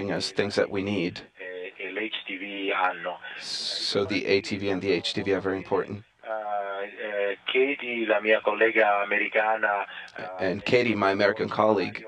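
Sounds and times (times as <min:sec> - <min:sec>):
man speaking over radio: 0:00.0 - 0:12.0.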